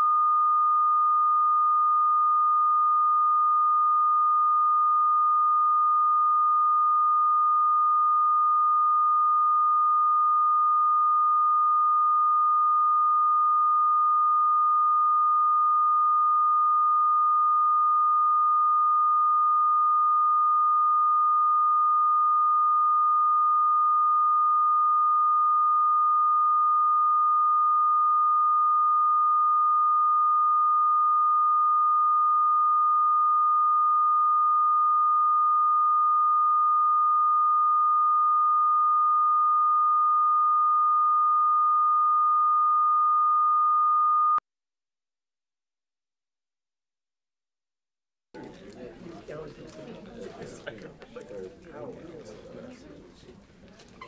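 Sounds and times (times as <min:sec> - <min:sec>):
continuous pure reference tone: 0:48.4 - 0:54.0.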